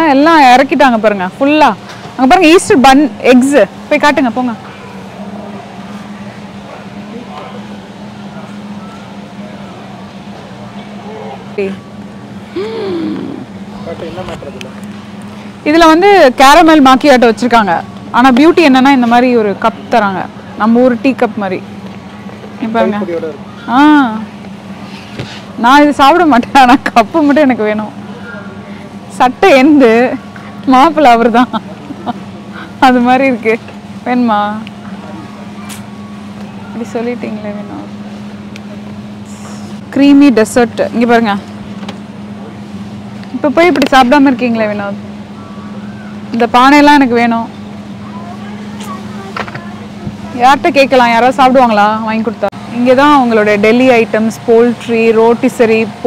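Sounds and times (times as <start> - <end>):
woman speaking: 0.0 - 4.6, 11.5 - 11.8, 15.6 - 21.6, 22.6 - 23.1, 23.7 - 24.3, 25.6 - 28.0, 29.1 - 31.6, 32.7 - 34.7, 36.8 - 37.9, 40.0 - 41.4, 43.4 - 45.0, 46.3 - 47.5, 50.3 - 56.0
refrigerated display cases humming: 0.0 - 56.0
faint voices: 3.6 - 16.2, 27.6 - 40.2, 42.3 - 56.0.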